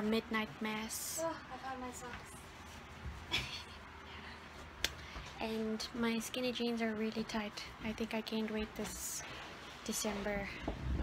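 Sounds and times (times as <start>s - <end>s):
soft rustle: 1.2s - 6.4s.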